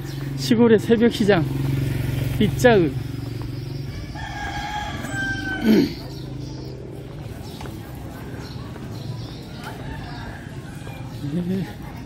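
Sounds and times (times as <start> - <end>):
motorbike passing: 0.0 - 12.0
rooster crowing: 3.9 - 5.8.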